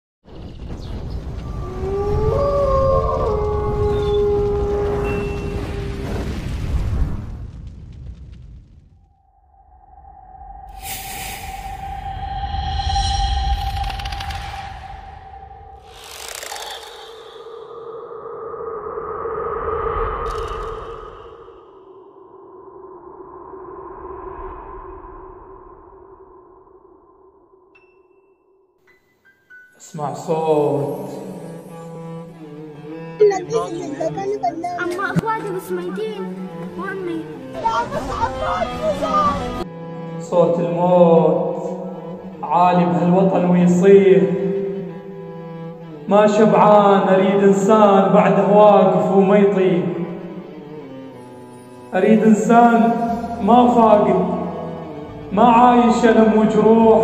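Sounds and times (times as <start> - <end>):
deep rumble: 0.5 - 27.7
other howling voices: 1.4 - 6.0
wolf howling: 1.4 - 6.3
dark ambient electronic drone: 9.2 - 27.5.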